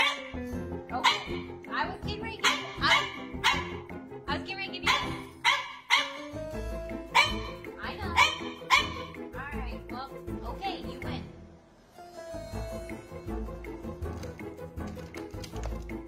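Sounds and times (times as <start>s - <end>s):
dog barking: 0.0s - 0.4s, 1.0s - 1.5s, 2.4s - 3.8s, 4.8s - 6.3s, 7.1s - 9.2s.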